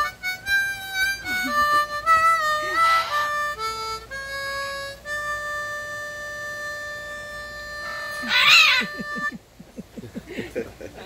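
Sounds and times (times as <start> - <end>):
harmonica steady note: 0.0 - 9.5
macaw calling: 1.1 - 3.8, 7.7 - 9.4
people laughing: 1.2 - 1.9, 8.2 - 11.0.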